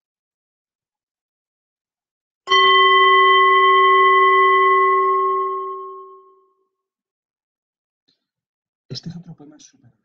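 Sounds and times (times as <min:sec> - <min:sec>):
bell ringing: 0:02.5 - 0:06.5.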